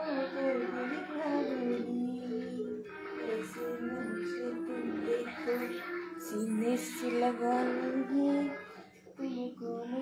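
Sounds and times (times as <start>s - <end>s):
person singing long notes: 0.0s - 10.0s.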